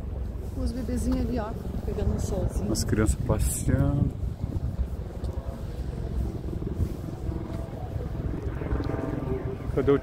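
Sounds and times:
helicopter rotor chopping: 0:00.0 - 0:10.0
wind on microphone: 0:00.0 - 0:10.0.

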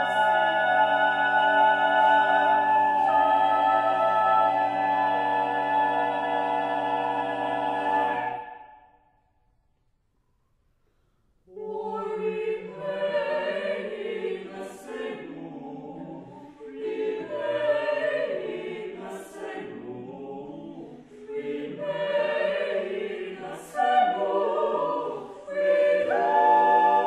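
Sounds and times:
vocal ensemble singing choral piece: 0:00.0 - 0:09.0, 0:11.5 - 0:27.0.

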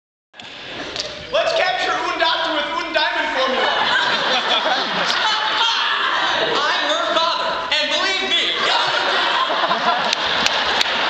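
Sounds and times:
loud raised voices: 0:01.3 - 0:10.1.

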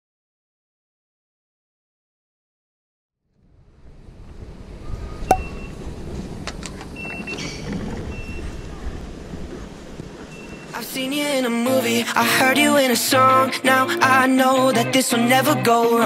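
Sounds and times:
short high beeps: 0:05.3 - 0:05.7.

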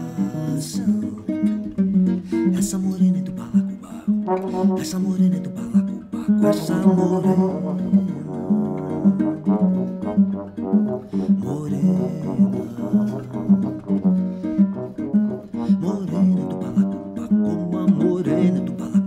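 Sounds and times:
acoustic guitar picked and strummed: 0:00.0 - 0:19.0
trombone holding notes: 0:04.2 - 0:18.7.

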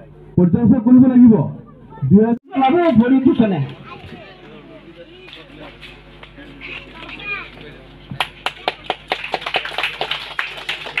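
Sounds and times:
audience clapping: 0:08.2 - 0:11.0.

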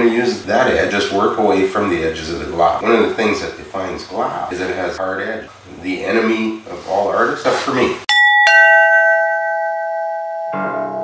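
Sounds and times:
two-tone doorbell chime: 0:08.1 - 0:11.0.

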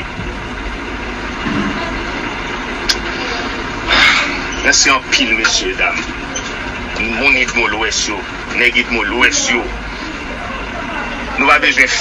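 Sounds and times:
steady rumbling: 0:00.0 - 0:12.0.

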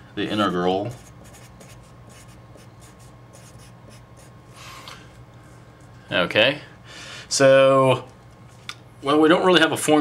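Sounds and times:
marker writing on paper: 0:00.9 - 0:04.3.

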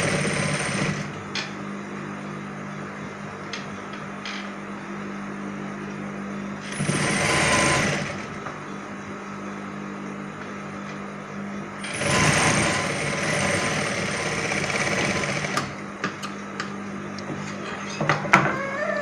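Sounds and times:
sewing machine stitching: 0:06.6 - 0:08.3, 0:11.8 - 0:15.8.

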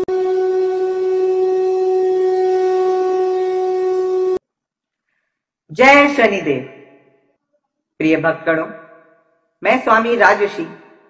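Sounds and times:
long horn note: 0:00.0 - 0:04.4.

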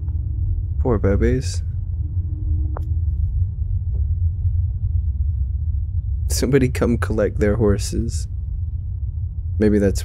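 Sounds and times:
vehicle rumble: 0:00.0 - 0:10.0.

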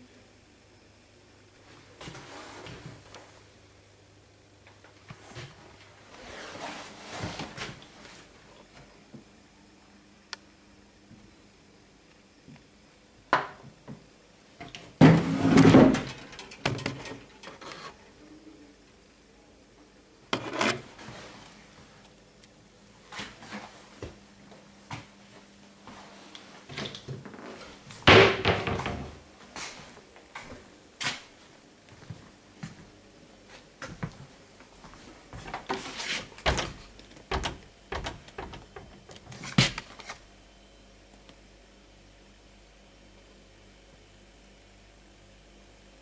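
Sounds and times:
cabinet door knocks and clunks: 0:28.1 - 0:29.2.

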